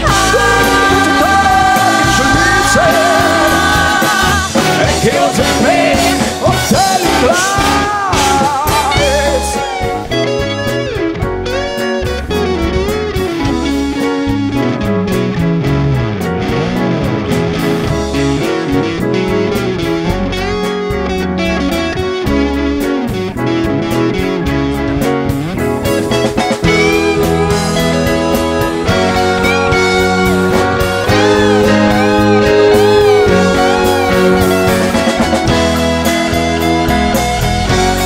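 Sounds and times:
horn section: 0.0 - 10.2, 25.8 - 38.0
bass: 0.0 - 38.0
drums: 0.0 - 38.0
electric guitar lead line: 0.0 - 38.0.

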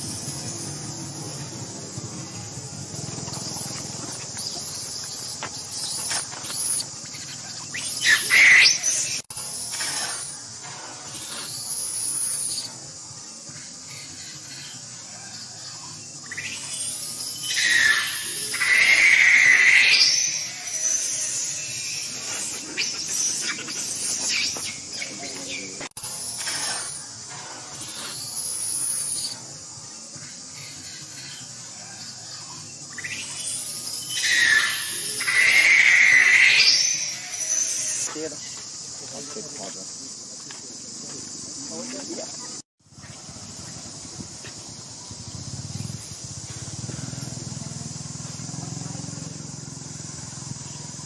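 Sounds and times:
infant monkey screaming: 0.0 - 10.4, 11.0 - 12.9, 13.5 - 38.2
short squeaks: 3.1 - 12.7, 19.9 - 29.4.

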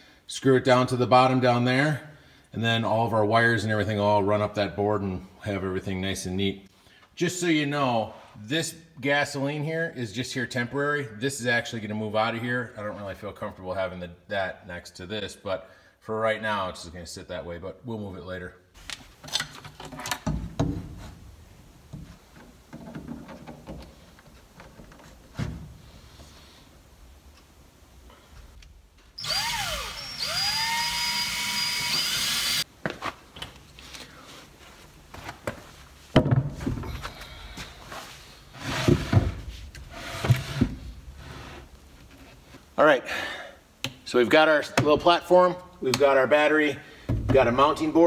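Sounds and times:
knocks and handling thuds: 18.8 - 26.0, 35.1 - 37.7, 38.7 - 42.7, 47.0 - 47.8
cordless drill driving screws: 29.2 - 32.6.

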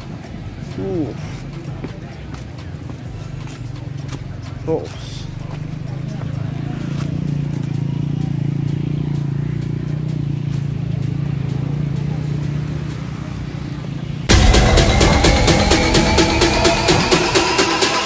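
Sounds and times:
steady low hum: 14.3 - 17.8
electronic dance music: 14.3 - 18.0.

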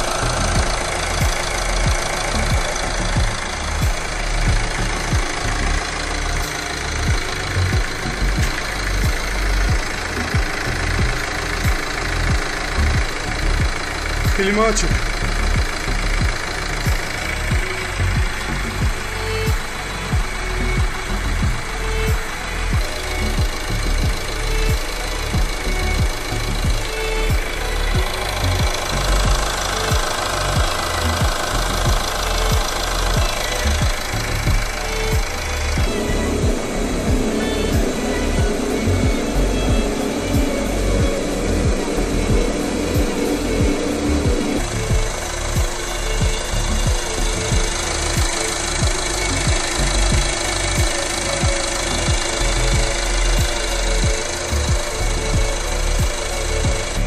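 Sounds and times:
background music: 0.0 - 57.0
car engine idling: 0.0 - 57.0.

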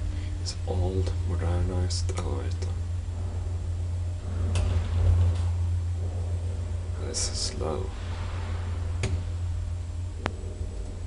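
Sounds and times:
elevator hum: 0.0 - 11.0.

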